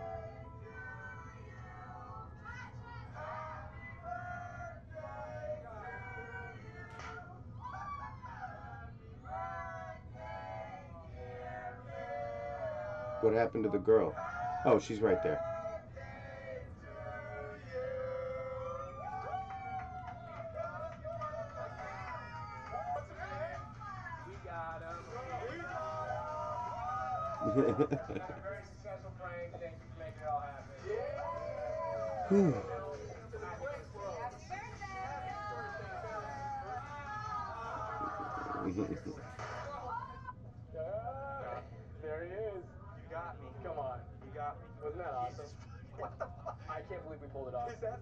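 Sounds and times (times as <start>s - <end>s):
steady low hum: 0.0s - 48.0s
men howling: 17.2s - 20.6s, 30.8s - 33.1s
person's drawn-out vocal call: 32.3s - 32.7s.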